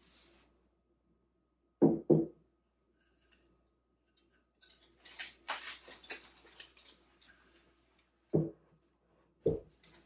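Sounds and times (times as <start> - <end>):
flower bouquet clicks and rustles: 4.6 - 8.2.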